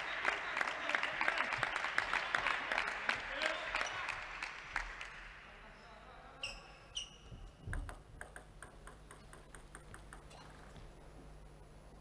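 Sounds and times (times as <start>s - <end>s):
table tennis ball bouncing: 7.6s - 10.8s.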